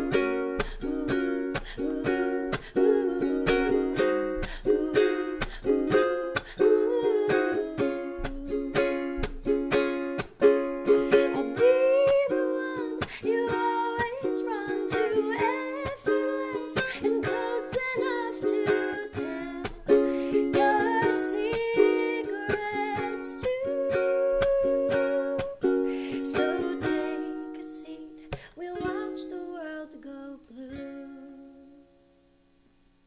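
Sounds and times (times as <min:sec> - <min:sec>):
woman singing: 0:00.0 - 0:09.3, 0:10.9 - 0:32.0
ukulele strumming: 0:00.0 - 0:31.9.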